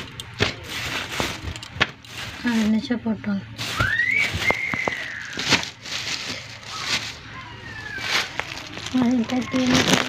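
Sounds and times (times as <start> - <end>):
high whistle: 3.7 - 5.4.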